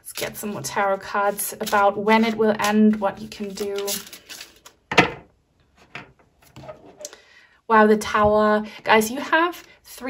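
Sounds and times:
cards rustling: 0:01.3 - 0:04.8.

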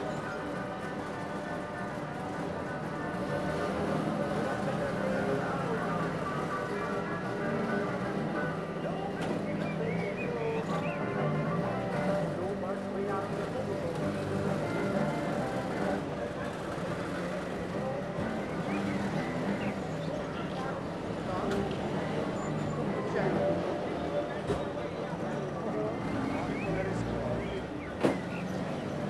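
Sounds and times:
two-stroke car engines buzzing: 0:00.0 - 0:29.0.

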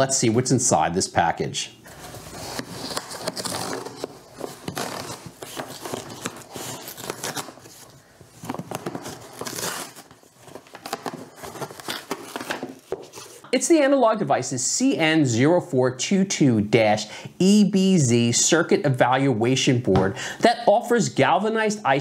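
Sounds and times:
bubble wrap crinkling: 0:01.9 - 0:13.4
cardboard flaps scraping: 0:01.9 - 0:13.4
cardboard box ripping open: 0:02.2 - 0:10.1, 0:10.8 - 0:13.4.

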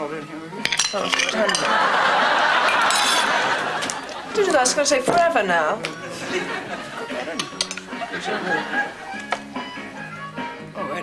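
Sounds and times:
cutlery clinking on plates: 0:00.6 - 0:02.0, 0:02.6 - 0:06.0, 0:07.3 - 0:08.0.

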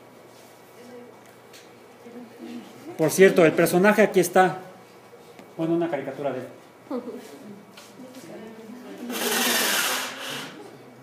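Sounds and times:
projection screen rubbing rattle: 0:09.0 - 0:10.6.

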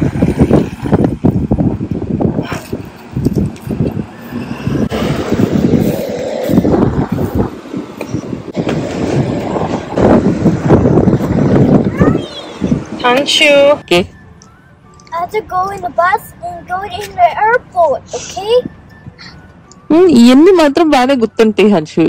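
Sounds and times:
wind buffeting microphone: 0:00.0 - 0:21.4.

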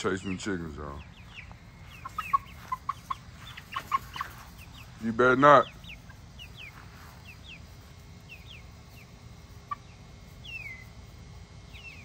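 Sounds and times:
chickens clucking: 0:00.0 - 0:12.0.

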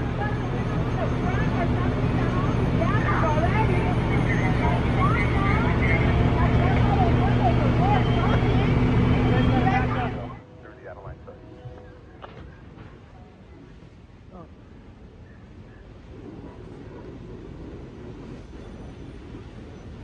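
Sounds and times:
fire engine pump drone: 0:00.0 - 0:20.0.

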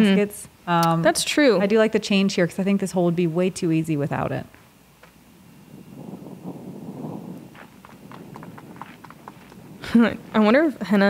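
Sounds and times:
golf cart rumble: 0:05.1 - 0:11.0.

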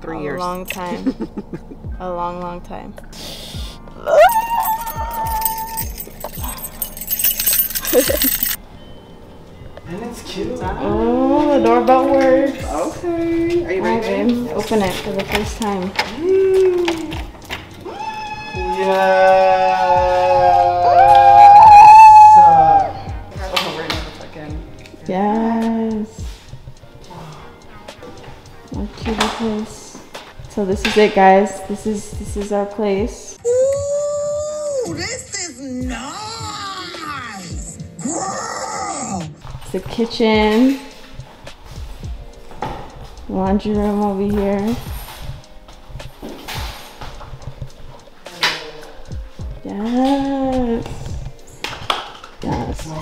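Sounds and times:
person crying out with joy: 0:04.0 - 0:06.6, 0:07.8 - 0:08.6, 0:16.1 - 0:17.2, 0:17.8 - 0:23.0, 0:33.4 - 0:35.0, 0:36.1 - 0:39.3
footsteps on hard floor: 0:39.4 - 0:48.2.

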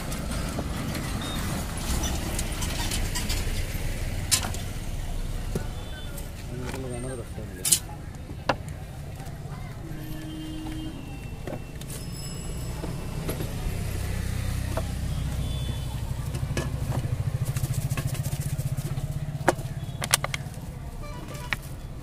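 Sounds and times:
passing vehicle engine: 0:09.5 - 0:22.0.

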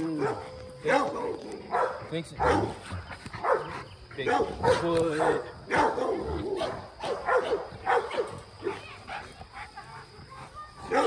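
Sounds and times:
dog barking: 0:00.1 - 0:02.7, 0:03.4 - 0:09.2.

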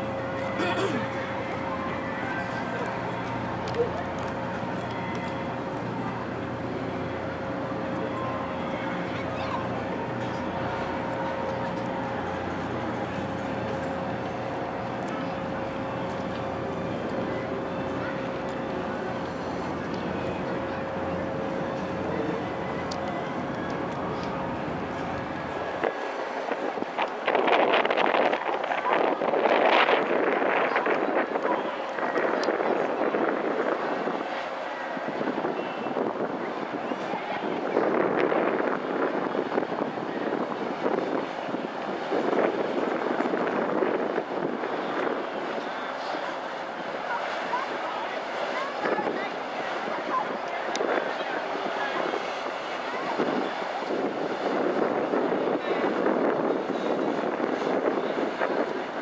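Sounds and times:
boat engines droning: 0:00.0 - 0:59.0
noisy background: 0:00.0 - 0:59.0
wind noise on microphone: 0:19.8 - 0:34.4, 0:35.0 - 0:45.7, 0:50.0 - 0:59.0.

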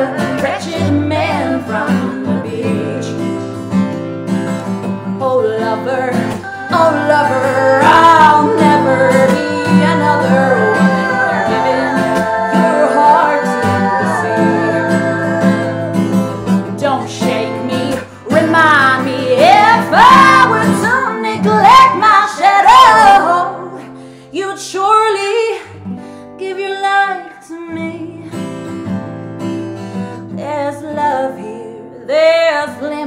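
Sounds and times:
woman singing: 0:00.0 - 0:03.8, 0:04.8 - 0:28.6, 0:30.2 - 0:33.0
strummed acoustic guitar: 0:00.0 - 0:26.5, 0:27.7 - 0:33.0.

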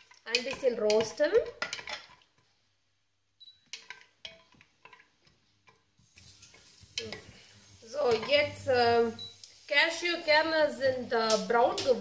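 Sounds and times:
wooden spatula scraping metal pot: 0:00.0 - 0:02.6, 0:03.5 - 0:12.0.

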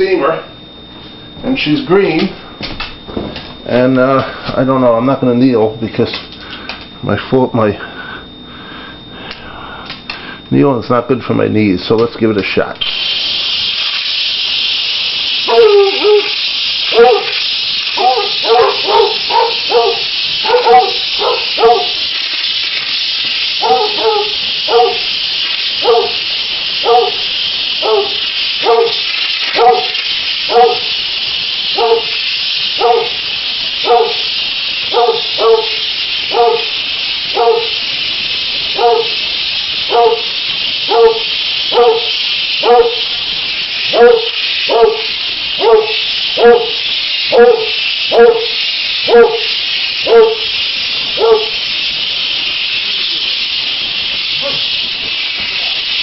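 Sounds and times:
steam cleaner hissing: 0:00.0 - 0:56.0
dog whimpering yelps: 0:15.5 - 0:16.3.

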